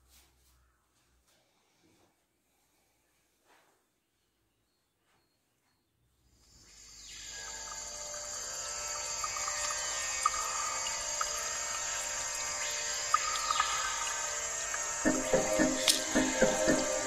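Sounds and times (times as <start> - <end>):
droning background music: 7.0 - 17.0.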